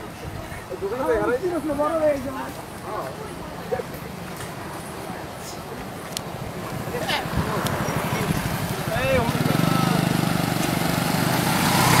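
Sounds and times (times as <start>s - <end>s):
motorcycle passing by: 6.5s - 12.0s.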